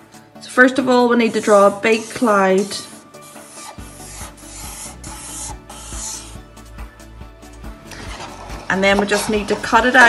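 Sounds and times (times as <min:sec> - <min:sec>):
quiet background music: 0:00.0 - 0:10.0
marker rubbing on paper: 0:01.2 - 0:06.5.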